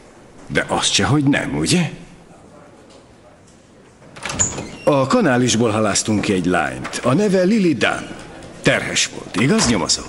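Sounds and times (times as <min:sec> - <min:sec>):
man speaking: 0:00.5 - 0:02.8, 0:04.8 - 0:10.0
wooden door squeaking open: 0:04.1 - 0:05.2.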